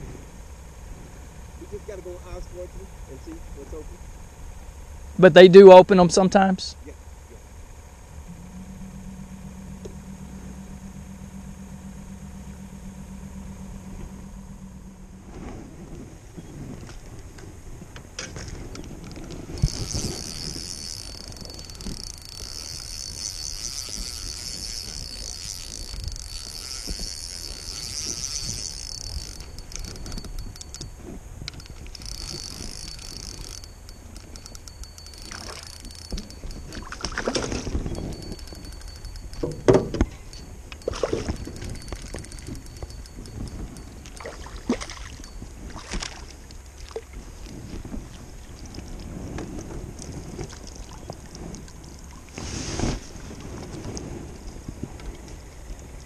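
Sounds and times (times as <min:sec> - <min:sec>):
electric trolling motor humming: 0:00.0 - 0:52.4
spinning reel whirring: 0:07.7 - 0:17.1, 0:18.2 - 0:52.4
knocks in aluminium boat: 0:39.4 - 0:40.2.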